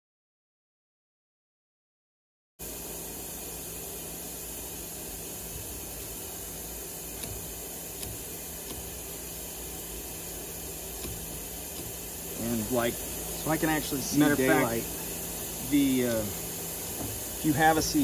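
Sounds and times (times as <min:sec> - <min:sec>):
steady hiss: 0:02.6 - 0:18.0.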